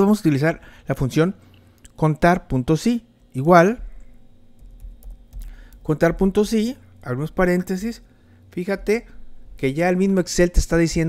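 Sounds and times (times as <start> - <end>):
typing on computer keyboard: 4.6 - 5.8.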